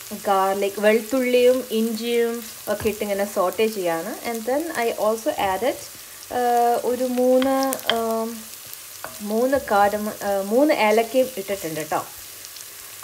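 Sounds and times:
onions sizzling in a pot: 0:00.0 - 0:13.0
person talking: 0:00.1 - 0:08.4, 0:09.2 - 0:12.1
wooden spoon stirring: 0:09.0 - 0:10.2.

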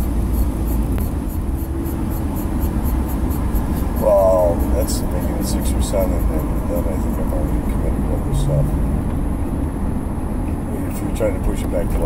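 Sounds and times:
car road and engine rumble: 0:00.0 - 0:12.0.

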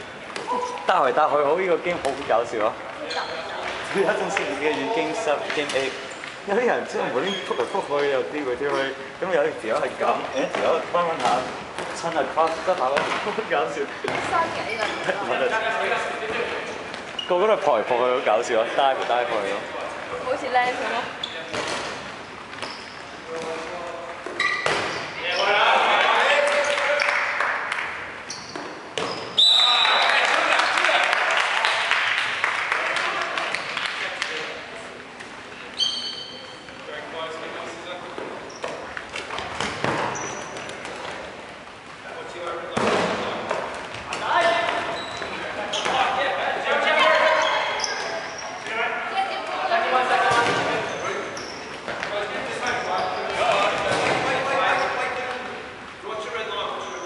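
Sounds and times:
players calling and shouting: 0:00.0 - 0:31.6, 0:35.5 - 0:57.0.

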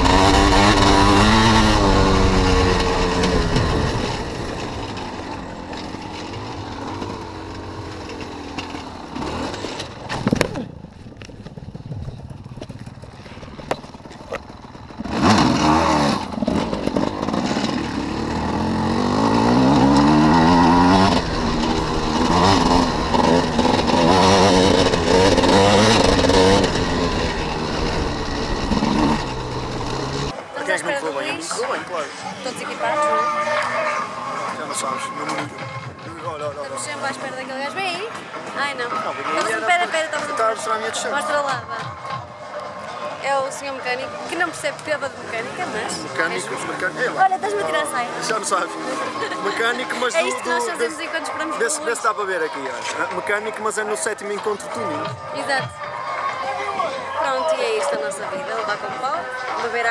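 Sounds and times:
motorcycle engine revving: 0:00.0 - 0:10.8, 0:11.4 - 0:56.4.

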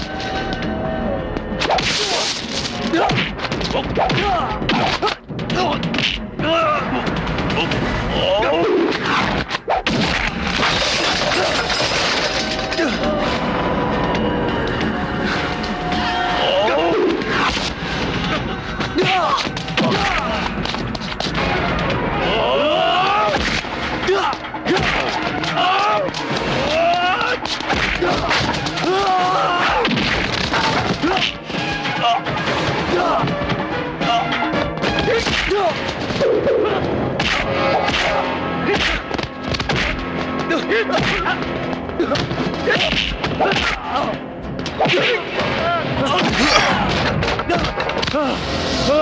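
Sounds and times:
background music: 0:00.0 - 0:49.0
men shouting: 0:22.1 - 0:23.4, 0:24.0 - 0:29.8.

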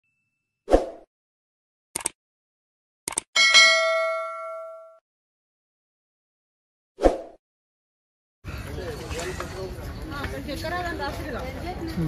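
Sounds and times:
short clicks: 0:02.0 - 0:02.2, 0:03.1 - 0:03.3
bell chime: 0:03.4 - 0:05.0.

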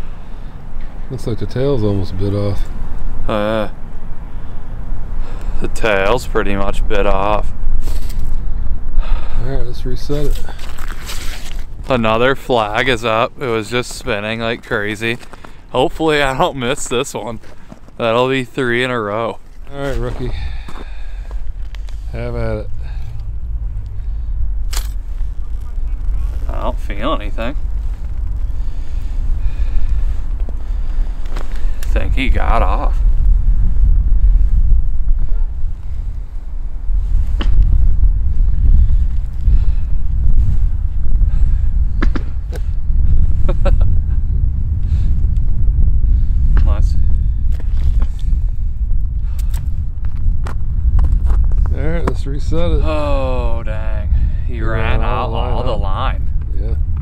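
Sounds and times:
wind rumbling on microphone: 0:00.0 - 0:57.0.

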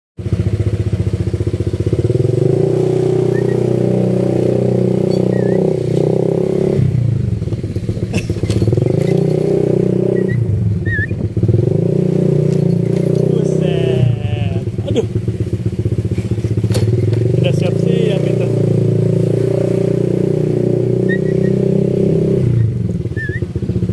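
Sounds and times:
scooter engine revving: 0:00.2 - 0:23.9
high bird chirps: 0:03.2 - 0:03.8, 0:05.0 - 0:05.8, 0:10.1 - 0:11.2, 0:21.0 - 0:21.8, 0:23.1 - 0:23.5.

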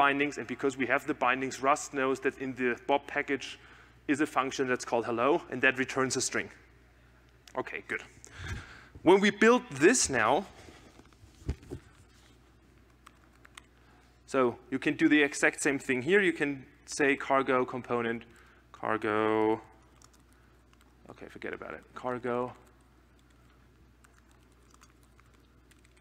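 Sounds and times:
faint computer keystrokes: 0:12.8 - 0:13.7, 0:19.8 - 0:20.9, 0:22.7 - 0:26.0.

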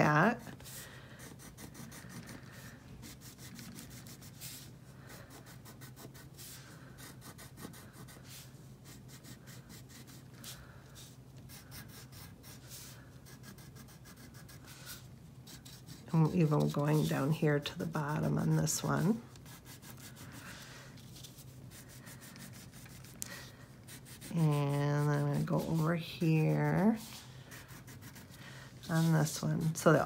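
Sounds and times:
crayon scratching on paper: 0:00.0 - 0:23.2, 0:23.8 - 0:30.0
steady low hum: 0:00.0 - 0:30.0.

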